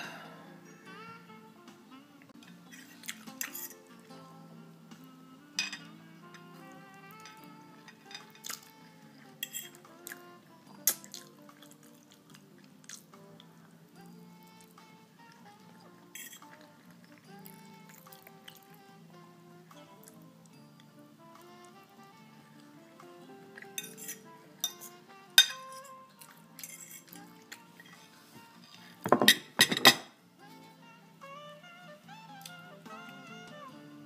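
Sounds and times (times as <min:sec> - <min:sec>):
background music: 0:00.0 - 0:34.0.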